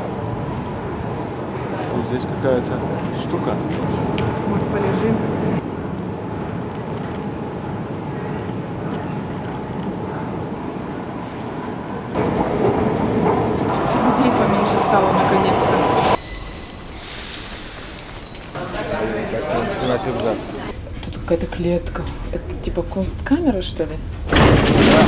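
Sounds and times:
metro train rumble: 0.0s - 24.4s
wheels squealing on rail: 13.7s - 20.7s
brief hissing: 16.8s - 18.4s.

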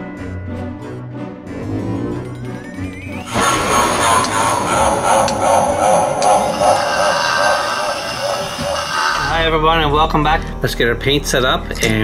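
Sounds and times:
dense noisy wash: 3.3s - 9.4s.

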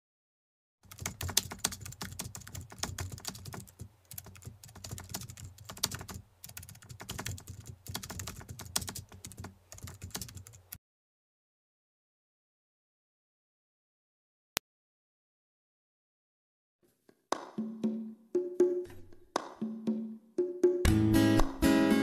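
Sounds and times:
typing on keyboard: 0.8s - 10.8s.

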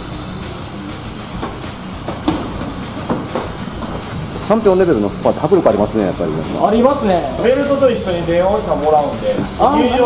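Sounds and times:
steady background noise: 0.0s - 10.0s
boxing gloves striking: 1.3s - 4.6s
feet moving on ring canvas: 1.4s - 4.7s.

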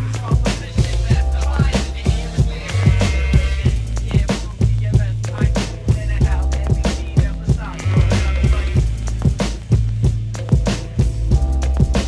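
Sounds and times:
hip hop track from vinyl: 0.0s - 12.0s.

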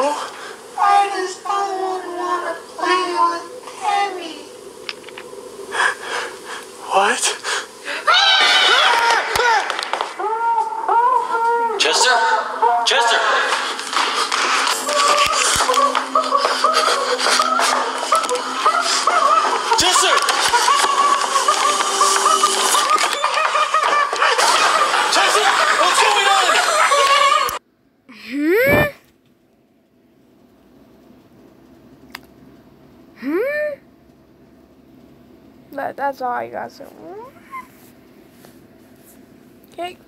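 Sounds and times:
voices: 0.0s - 27.6s
man laughing hard: 14.9s - 27.6s.

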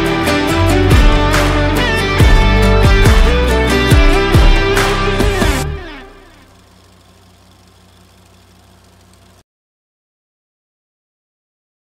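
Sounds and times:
pickup truck engine idling: 5.1s - 9.4s.

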